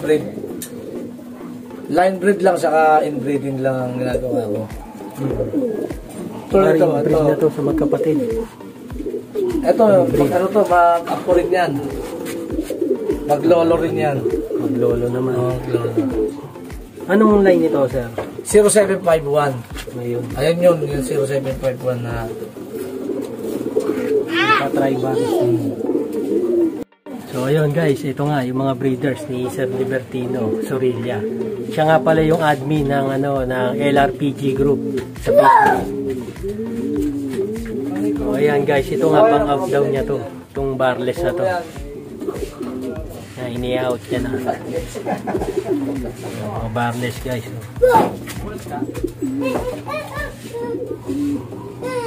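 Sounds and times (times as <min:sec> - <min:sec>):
pigeons cooing: 0:00.0 - 0:52.0.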